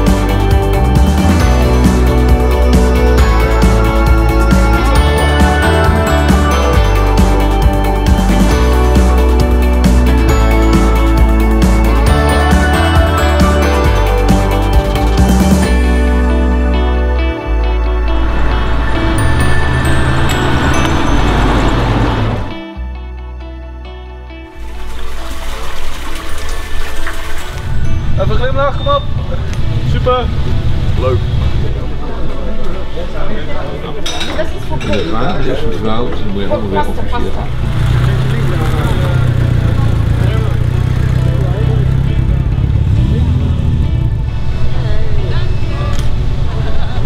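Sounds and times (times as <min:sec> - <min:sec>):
background music: 0:00.0 - 0:47.0
car driving past: 0:18.0 - 0:22.7, 0:37.2 - 0:47.0
voices: 0:28.1 - 0:43.6, 0:44.3 - 0:47.0.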